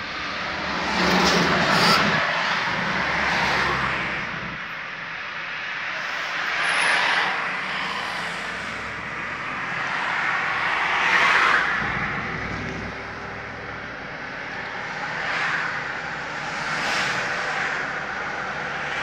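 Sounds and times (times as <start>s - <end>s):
road and wind noise in car: 0.0s - 19.0s.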